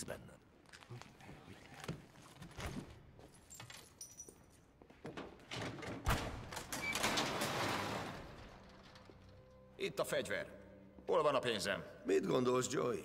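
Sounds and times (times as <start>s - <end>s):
truck cargo door sliding open: 6.5s - 9.0s.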